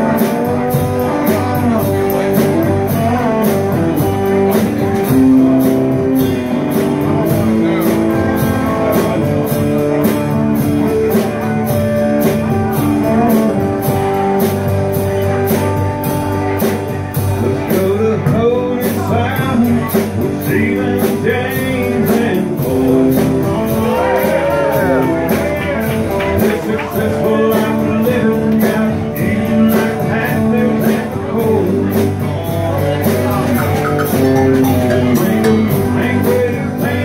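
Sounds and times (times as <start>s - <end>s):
acoustic guitar: 0.0s - 37.0s
drums keeping a steady beat: 0.0s - 37.0s
electric guitar: 0.0s - 37.0s.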